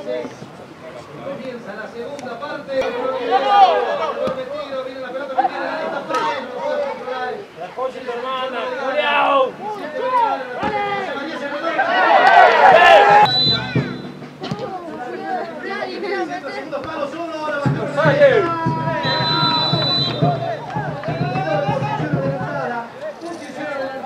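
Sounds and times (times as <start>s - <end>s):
background chatter: 0.0s - 24.0s.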